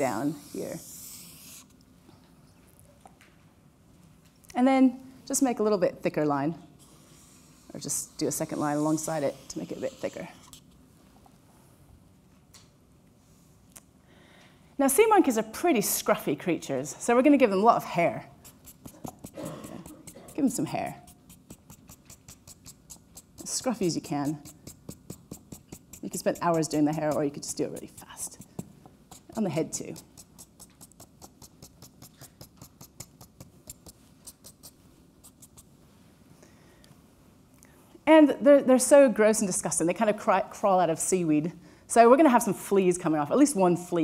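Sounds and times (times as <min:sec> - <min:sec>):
marker drawing on paper: 0:00.0 - 0:01.7, 0:06.8 - 0:10.7, 0:18.4 - 0:35.7.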